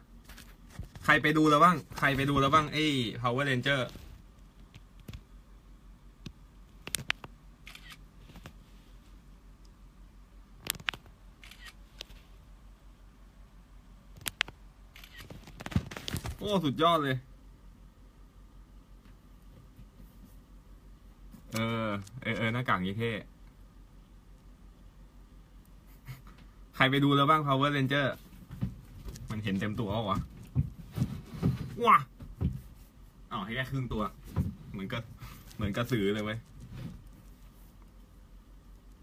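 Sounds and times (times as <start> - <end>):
steady low hum: 0.0 - 39.0
man speaking: 1.1 - 4.0, 16.4 - 17.3, 21.5 - 23.3, 26.8 - 28.2, 29.3 - 30.3, 31.7 - 32.1, 33.3 - 36.5
soft rustle: 3.6 - 5.2, 7.7 - 9.3, 11.4 - 12.5, 19.0 - 20.6, 32.4 - 39.0
sharp clicks: 14.2 - 15.6.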